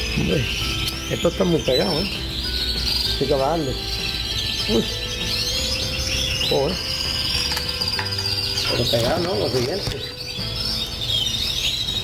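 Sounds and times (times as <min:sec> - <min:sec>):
canaries singing: 0:00.0 - 0:12.0.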